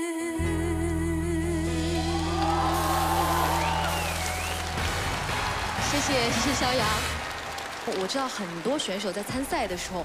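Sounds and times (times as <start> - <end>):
woman singing with vibrato: 0.0 - 2.9
audience applause and cheering: 1.8 - 10.0.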